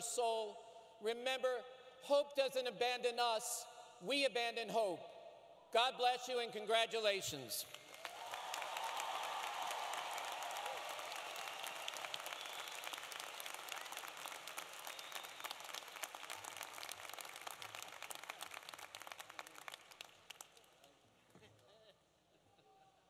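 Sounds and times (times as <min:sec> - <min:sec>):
crowd applause: 0:07.7 - 0:20.9.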